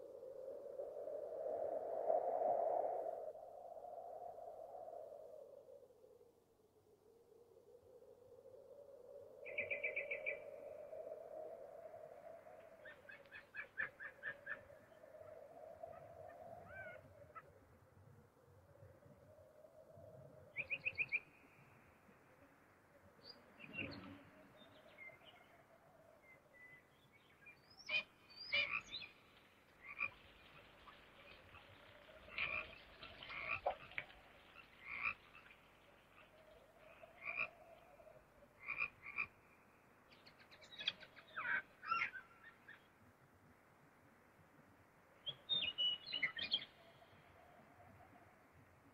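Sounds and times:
frogs croaking: 0:27.8 - 0:29.2, 0:29.8 - 0:42.7.

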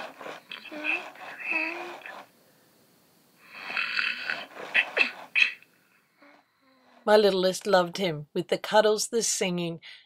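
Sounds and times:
toy playing breathy sleeping sounds: 0:00.0 - 0:02.7, 0:03.4 - 0:07.1.

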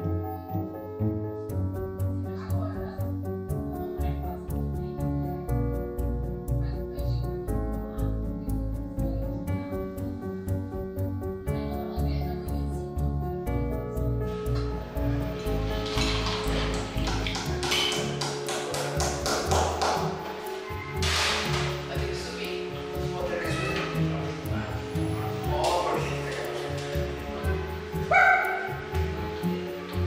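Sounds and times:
background music: 0:00.0 - 0:30.0.

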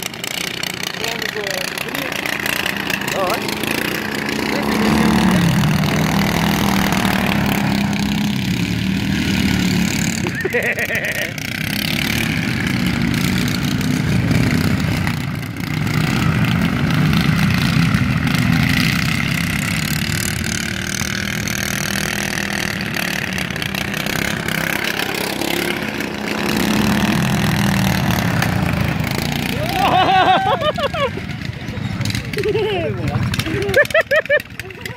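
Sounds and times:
lawn tractor engines racing: 0:00.0 - 0:34.9
person speaking: 0:03.1 - 0:05.5.

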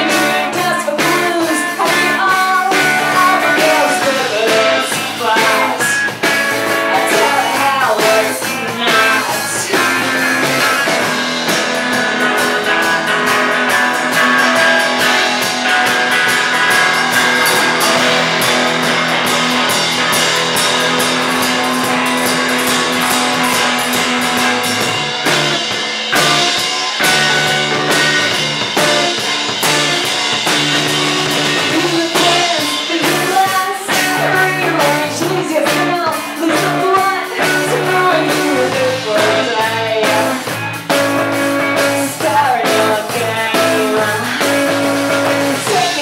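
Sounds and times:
woman singing: 0:00.0 - 0:11.1, 0:31.5 - 0:46.0
drums: 0:00.0 - 0:46.0
electric bass: 0:00.0 - 0:46.0
electric guitar: 0:00.0 - 0:46.0.

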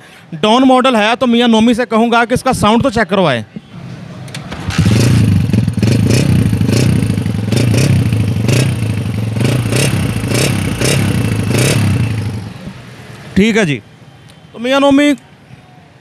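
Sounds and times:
motorcycle engine running: 0:04.5 - 0:12.8.

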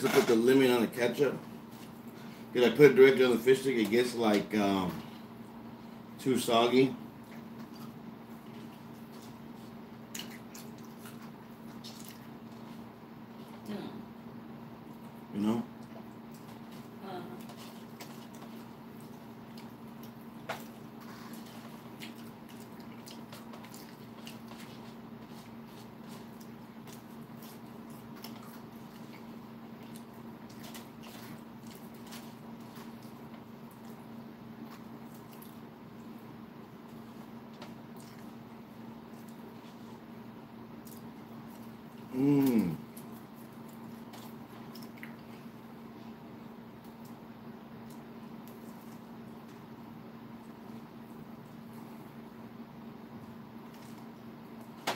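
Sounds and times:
steady low hum: 0:00.0 - 0:54.9
person chewing food: 0:07.2 - 0:13.7, 0:15.8 - 0:40.1, 0:40.7 - 0:49.8
person humming: 0:42.1 - 0:42.8.

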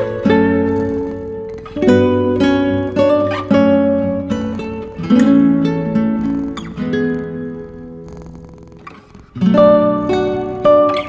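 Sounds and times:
acoustic guitar chord ringing: 0:00.0 - 0:07.6
cat purring: 0:00.0 - 0:11.0.

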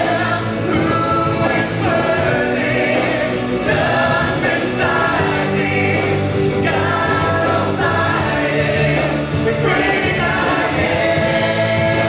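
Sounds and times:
voices singing sustained phrases: 0:00.0 - 0:12.0
worship band playing: 0:00.0 - 0:12.0.

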